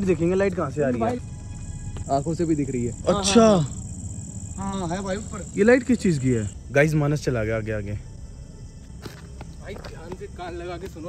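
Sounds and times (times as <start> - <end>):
high-pitched cricket trill: 0.0 - 11.0.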